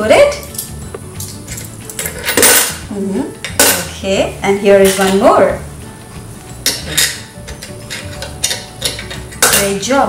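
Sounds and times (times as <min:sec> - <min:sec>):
coins clinking: 0:00.4 - 0:02.8.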